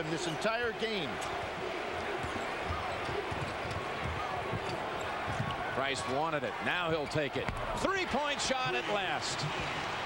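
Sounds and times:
arena crowd noise: 0.0s - 10.0s.

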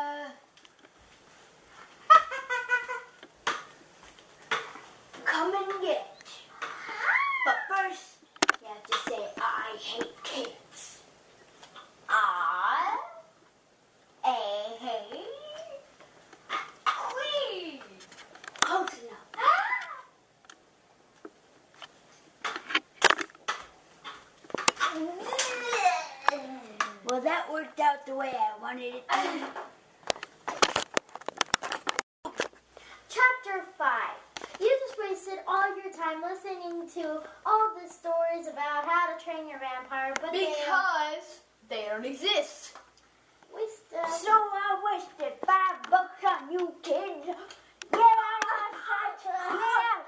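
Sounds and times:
child's wordless voice: 0.0s - 0.5s, 12.1s - 13.4s, 14.2s - 15.9s, 17.0s - 20.2s, 33.1s - 42.8s, 43.5s - 50.0s
girl's high-pitched cry: 6.8s - 7.7s, 25.2s - 26.7s
sharp clicks and knocks: 8.3s - 9.2s, 21.2s - 25.0s, 30.0s - 32.5s.

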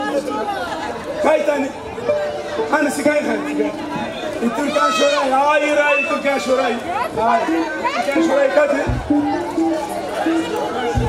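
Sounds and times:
crowd chatter: 0.0s - 11.0s
man speaking through loudspeakers: 1.2s - 1.9s, 2.6s - 9.5s.

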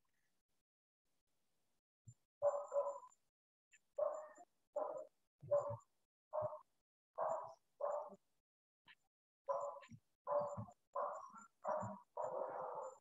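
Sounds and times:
dog barking: 2.4s - 3.1s, 4.0s - 6.6s, 7.2s - 8.2s, 9.5s - 13.0s.

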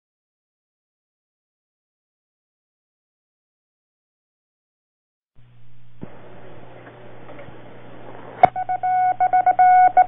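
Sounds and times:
low hum: 5.4s - 10.0s
morse code beeping tone: 8.4s - 10.0s.

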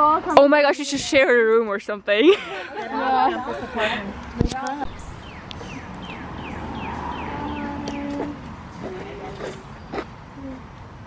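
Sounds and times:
bird chirping: 4.8s - 8.5s.

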